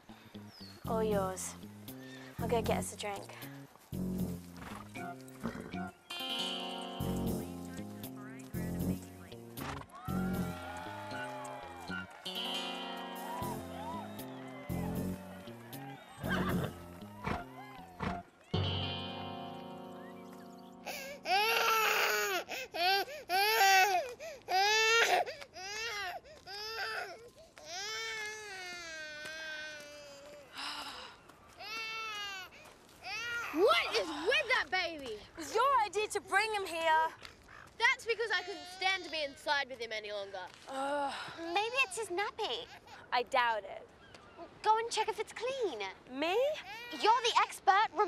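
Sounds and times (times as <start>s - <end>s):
sustained instrumental chords: 3.5s - 17.4s, 18.6s - 21.9s
baby crying: 20.9s - 30.5s, 31.6s - 33.7s.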